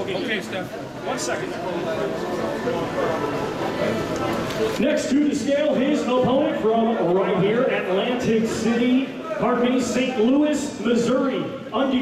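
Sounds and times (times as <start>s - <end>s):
people talking: 0.0s - 12.0s
man announcing: 4.8s - 12.0s.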